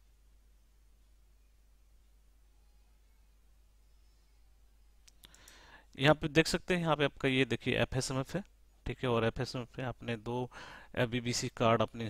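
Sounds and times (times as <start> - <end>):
faint hiss: 0.0 - 12.0
faint sharp clicks: 5.0 - 5.6.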